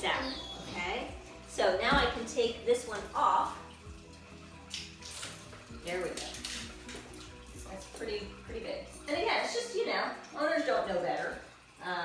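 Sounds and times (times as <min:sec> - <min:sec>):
background music: 0:00.0 - 0:12.0
metal collar links clinking: 0:05.1 - 0:09.5.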